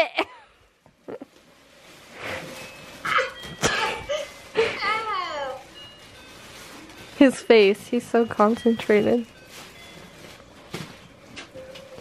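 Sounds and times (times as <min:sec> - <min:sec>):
gift wrap rustling and crinkling: 0:01.0 - 0:12.0.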